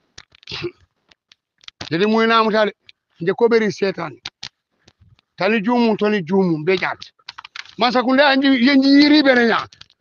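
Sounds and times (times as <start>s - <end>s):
person speaking: 1.8s - 4.4s, 5.2s - 9.8s.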